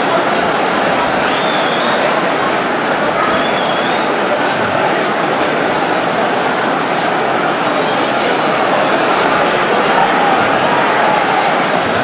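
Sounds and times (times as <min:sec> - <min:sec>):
crowd voices din: 0:00.0 - 0:12.0.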